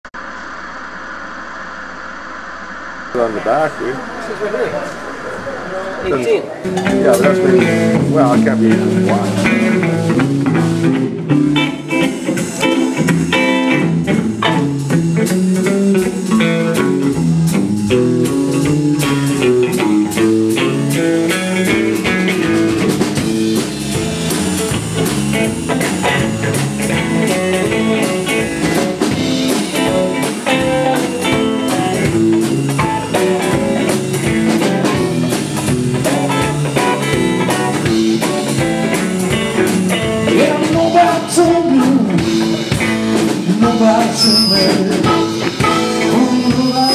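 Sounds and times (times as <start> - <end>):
electric guitar: 2.9 - 46.9
bass line: 3.1 - 46.9
drum kit: 6.6 - 46.9.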